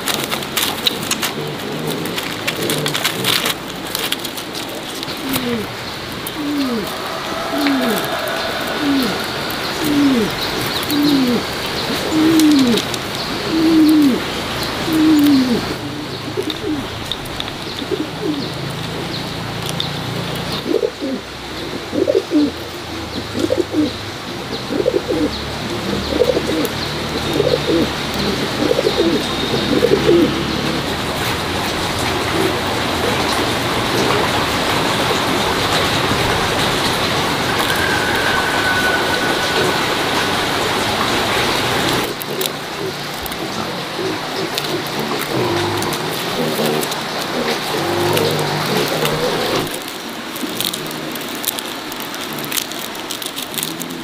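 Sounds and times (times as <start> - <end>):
background hiss: 0.0 - 53.1
bird calls sliding down: 0.6 - 14.2.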